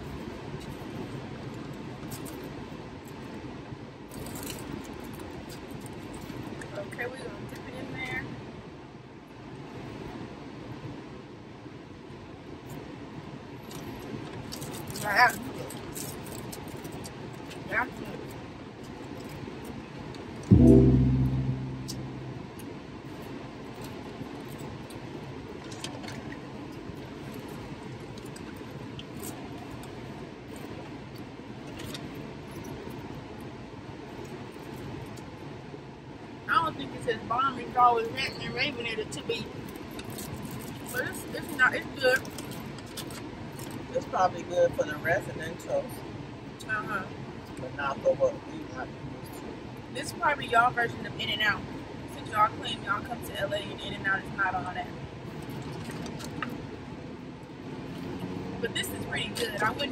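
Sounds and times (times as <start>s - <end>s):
loud low hum: 20.5s - 22.6s.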